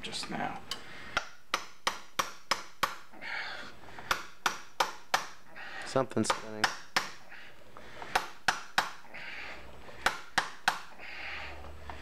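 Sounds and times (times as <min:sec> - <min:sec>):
hammer tapping on steel tool: 0:00.7 - 0:03.1, 0:04.0 - 0:05.4, 0:06.2 - 0:07.2, 0:08.1 - 0:09.0, 0:10.0 - 0:10.9.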